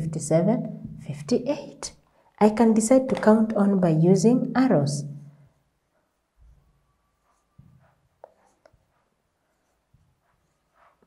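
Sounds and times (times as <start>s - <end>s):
marker scratching on whiteboard: 6.4s - 11.0s.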